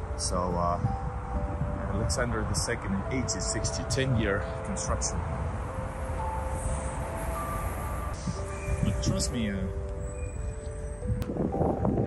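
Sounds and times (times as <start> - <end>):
low city rumble: 0.0 - 12.0.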